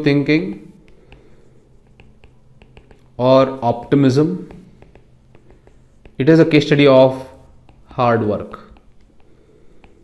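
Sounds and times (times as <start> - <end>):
stylus tapping on tablet screen: 0.4 - 10.0.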